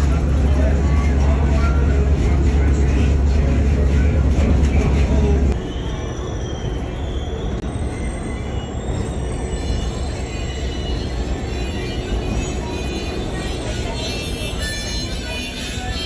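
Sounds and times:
train car rumbling on rails: 0.0 - 16.0.

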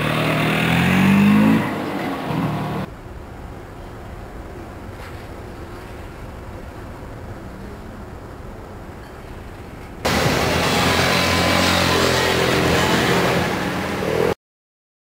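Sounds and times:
motorcycle engine passing: 0.0 - 2.9, 10.1 - 14.3
street noise: 0.0 - 14.4
low harbour rumble: 1.4 - 14.3.

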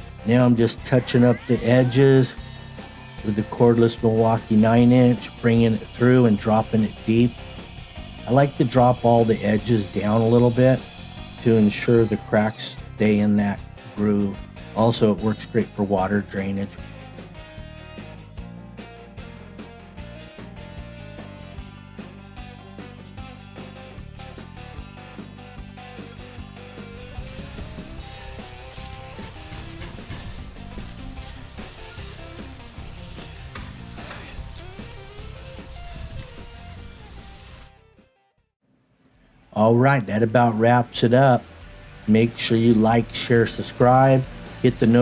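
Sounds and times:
background music: 0.0 - 38.2, 39.4 - 45.0
hose spray hissing onto concrete: 1.5 - 12.8, 26.8 - 37.7.

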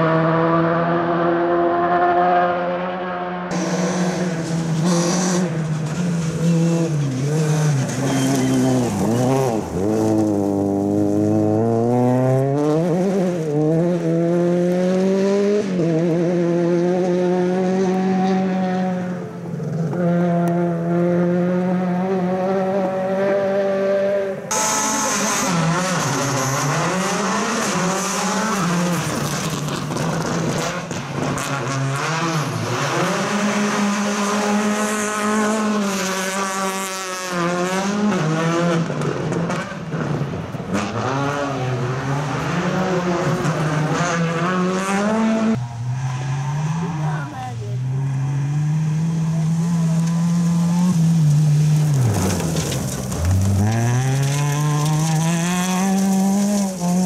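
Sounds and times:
rally car engines at full throttle: 0.0 - 57.0.

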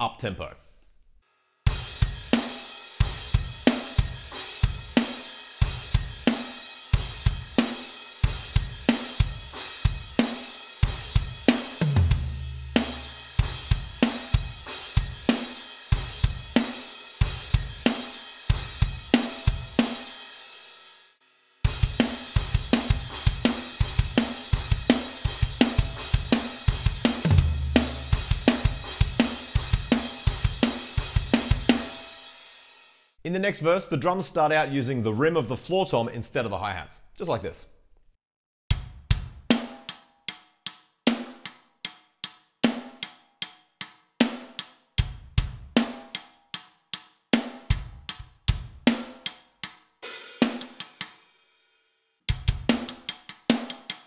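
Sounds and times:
electronic drum kit groove: 1.7 - 20.3, 21.6 - 32.3, 38.7 - 40.0, 44.2 - 46.2, 47.4 - 49.4, 50.0 - 51.3, 52.3 - 54.0.

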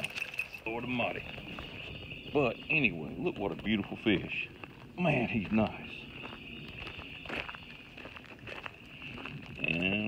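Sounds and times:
footsteps on dirt: 0.0 - 10.0.

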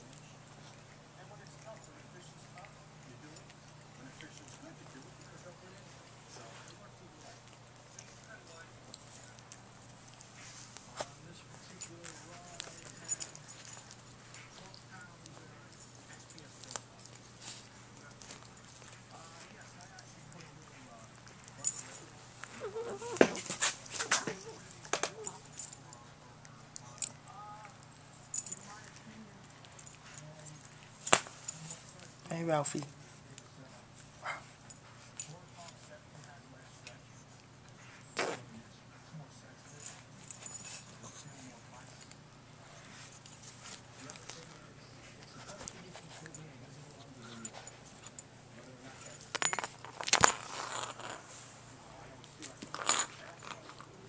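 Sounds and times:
puppy chewing: 0.0 - 54.0
puppy low vocal sound: 20.0 - 28.1
puppy whimpering: 22.0 - 25.8.

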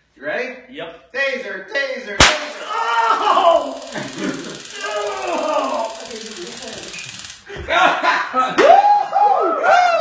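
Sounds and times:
taser rapid clicking: 2.2 - 7.5
man crying out: 2.6 - 6.0.

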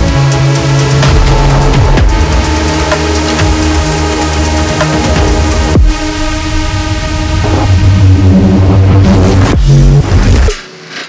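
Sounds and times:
low bass: 0.0 - 10.7.

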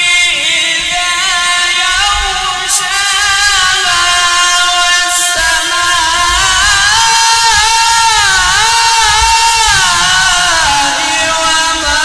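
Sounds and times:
melodic recitation by one voice: 0.0 - 12.0.

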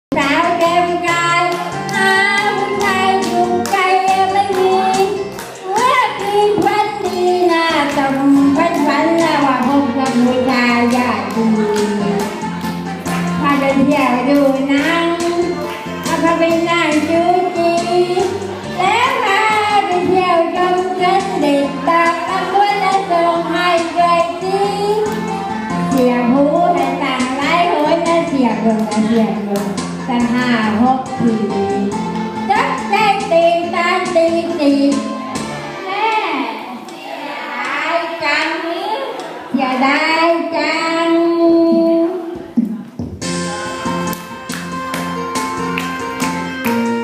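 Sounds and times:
woman singing into microphone: 0.1 - 12.4
woman singing through loudspeaker: 0.1 - 42.9
amplified backing music: 0.1 - 47.0.

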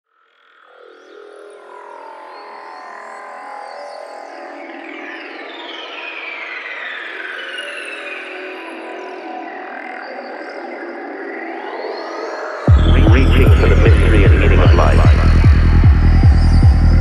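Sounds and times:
psychedelic trance synthesizers: 4.2 - 17.0
synthesizer pitch glides: 12.7 - 17.0.

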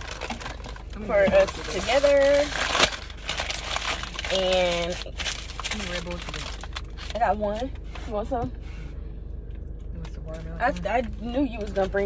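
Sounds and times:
paper bag crinkling: 0.0 - 7.3
voice: 1.0 - 2.6, 4.2 - 8.5, 9.9 - 12.0.

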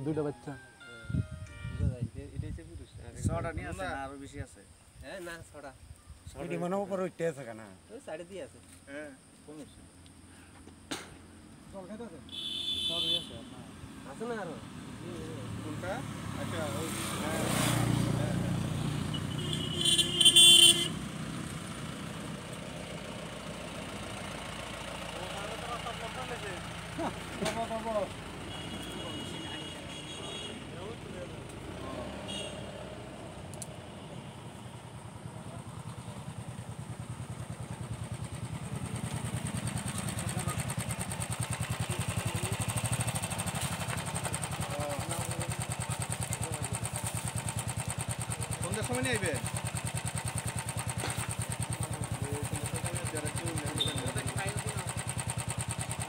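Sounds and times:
loud steady tone: 0.2 - 2.1, 53.7 - 54.4
vehicle engine running: 13.8 - 56.0.

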